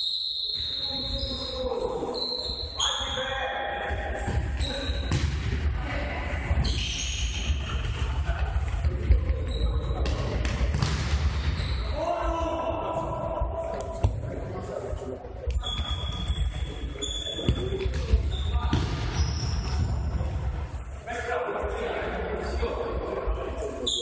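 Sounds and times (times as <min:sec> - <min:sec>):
sneakers squeaking: 0:00.0 - 0:03.2, 0:04.0 - 0:05.4, 0:06.4 - 0:12.0, 0:15.6 - 0:20.2
ball kicked and bouncing: 0:04.3 - 0:05.6, 0:07.5 - 0:11.6, 0:17.4 - 0:19.9
players shouting: 0:11.9 - 0:13.7.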